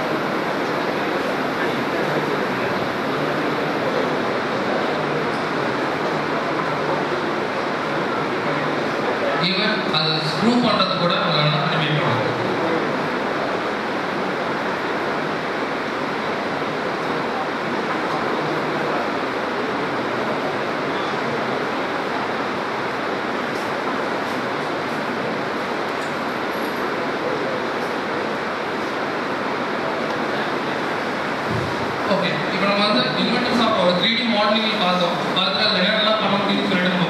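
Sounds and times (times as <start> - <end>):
speech: 0.7 - 13.2, 31.6 - 37.0.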